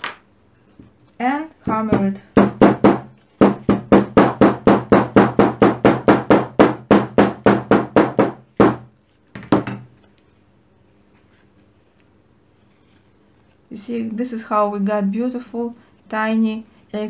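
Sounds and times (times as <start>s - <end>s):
hammer tapping leather: 1.7s - 8.9s.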